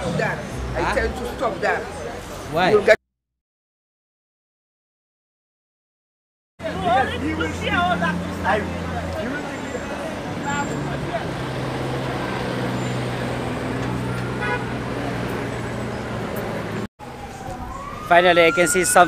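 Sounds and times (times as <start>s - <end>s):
vehicle engines running: 0.0s - 2.9s, 6.6s - 19.0s
passers-by talking: 0.0s - 3.0s, 6.6s - 14.3s.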